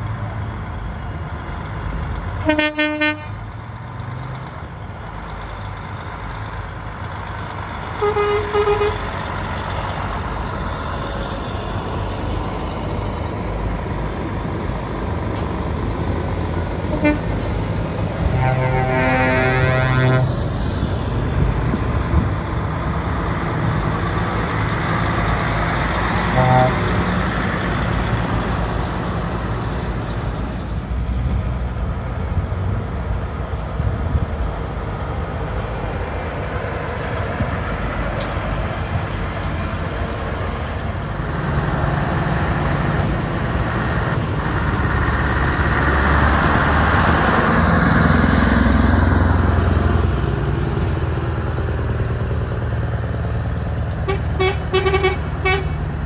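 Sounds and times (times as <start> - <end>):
truck diesel engines rumbling: 0.0 - 56.0
truck air horn blasts: 2.4 - 3.4, 8.0 - 9.1, 16.9 - 17.4, 18.2 - 20.4, 26.3 - 27.0, 54.0 - 55.8.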